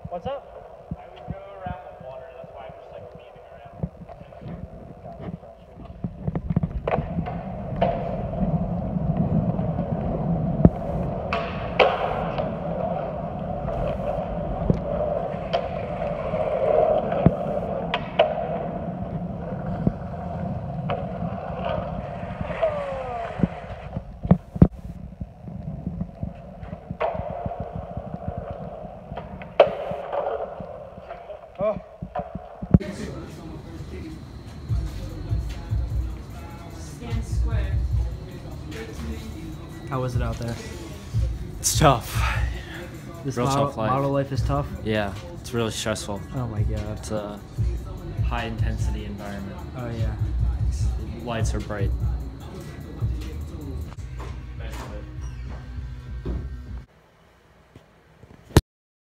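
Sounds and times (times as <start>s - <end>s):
skateboard wheels rolling on concrete: 0.0s - 56.9s
skateboard clacks: 0.5s - 24.8s, 25.8s - 33.1s.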